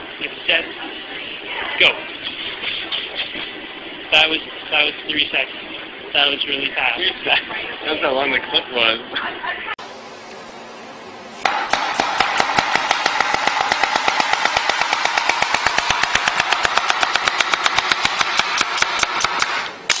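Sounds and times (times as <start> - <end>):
knife chopping on cutting board: 11.4 - 19.6.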